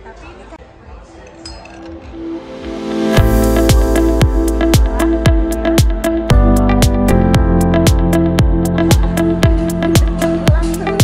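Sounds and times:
faint background chatter: 0.0s - 2.9s, 4.0s - 6.8s
tableware clink: 1.4s - 2.1s
music: 1.5s - 11.0s.

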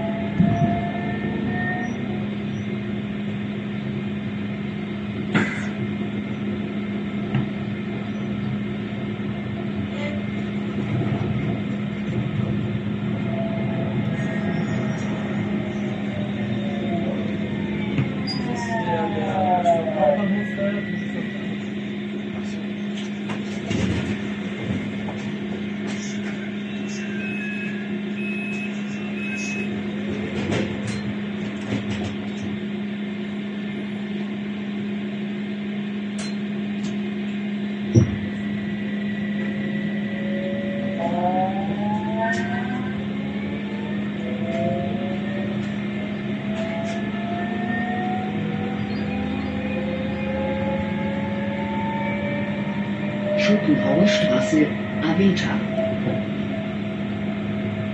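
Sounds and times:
tram electrical hum: 0.0s - 57.9s
traction motors whining: 10.1s - 32.6s.

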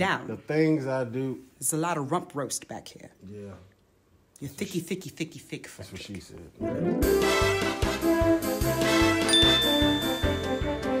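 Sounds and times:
background music with steady beat: 6.6s - 11.0s
small bell ringing: 9.3s - 11.0s.

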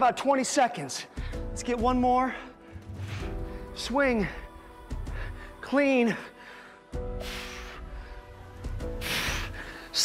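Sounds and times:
background music with bass line: 7.0s - 10.0s
hissing exhale: 7.2s - 7.9s, 9.0s - 9.9s.

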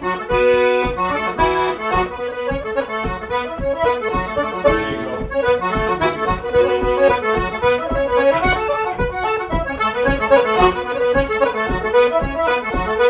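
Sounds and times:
button accordion dance tune: 0.0s - 13.0s.

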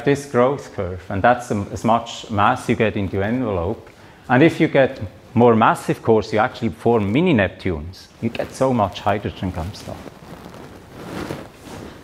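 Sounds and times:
microphone room noise hiss: 0.0s - 12.0s.

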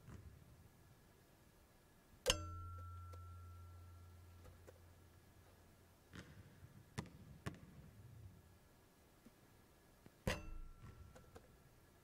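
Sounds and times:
basketball clanging on rim: 2.3s - 3.6s, 10.3s - 11.4s.

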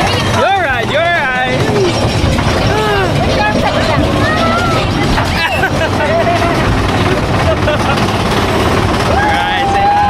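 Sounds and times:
low rumble of coaster train: 0.0s - 10.0s
riders screaming and laughing: 4.3s - 10.0s.

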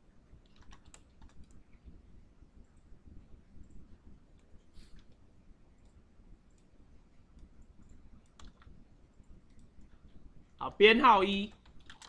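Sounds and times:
faint computer keyboard typing: 0.3s - 2.0s, 2.6s - 10.2s, 11.4s - 12.0s.

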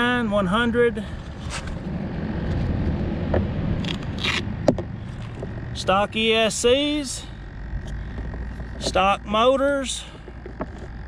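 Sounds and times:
low steady rumble: 0.0s - 11.0s
handling scraping and rustling: 1.1s - 2.9s, 3.8s - 5.8s, 10.1s - 11.0s.

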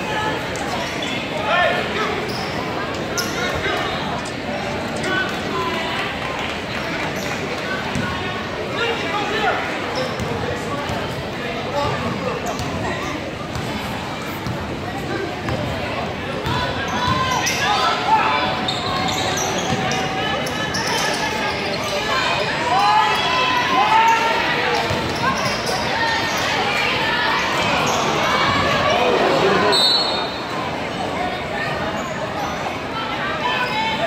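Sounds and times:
spectators shouting and talking: 0.0s - 34.0s.

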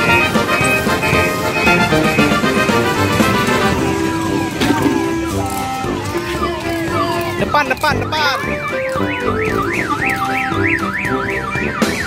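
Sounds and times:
electronic siren warbling: 0.0s - 7.6s, 8.2s - 12.0s
cheerful background music: 0.0s - 12.0s.

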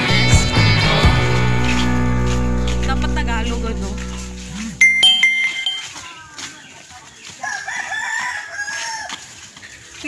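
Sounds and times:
background music: 0.0s - 5.4s
bright ringing tone: 4.8s - 6.0s
rooster crowing: 7.4s - 9.3s.

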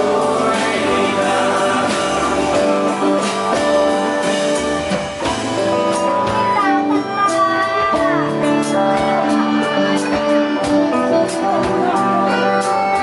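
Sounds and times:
man singing: 0.0s - 4.4s
strummed acoustic guitar: 0.0s - 6.7s
hand drums: 0.0s - 13.0s.

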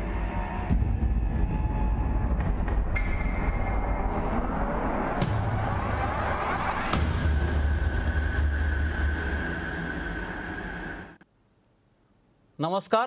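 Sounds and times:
deep rumbling drone: 0.0s - 11.2s
rising whoosh: 1.5s - 11.2s.

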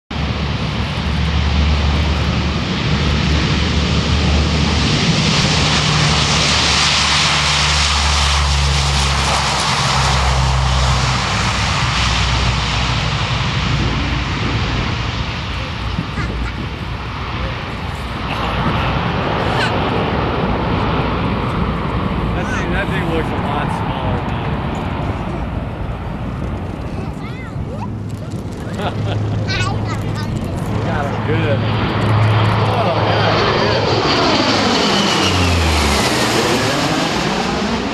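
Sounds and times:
turboprop propeller drone: 0.1s - 37.9s.

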